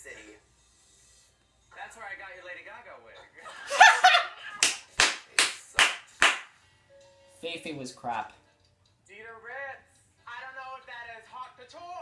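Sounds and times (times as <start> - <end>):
sharp hand claps: 4.6 - 6.6.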